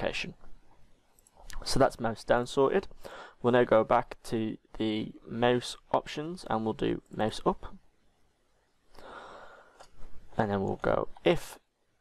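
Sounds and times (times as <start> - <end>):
man's intake of breath: 3.0 - 3.4, 8.9 - 9.9.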